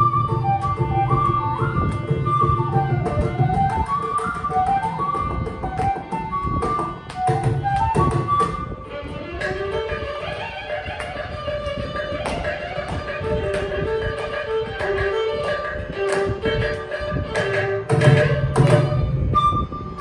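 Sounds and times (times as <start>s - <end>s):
bamboo flute: 0.0s - 20.0s
violin melody: 0.0s - 20.0s.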